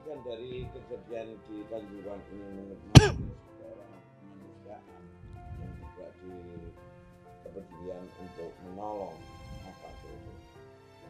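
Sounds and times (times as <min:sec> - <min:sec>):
background music: 0:00.0 - 0:11.0
man coughing: 0:03.0 - 0:03.3.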